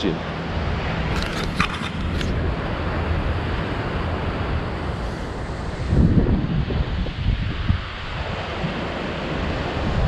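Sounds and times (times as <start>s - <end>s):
wind noise on microphone: 0.5s - 10.0s
camera handling clicks and scrapes: 1.1s - 2.4s.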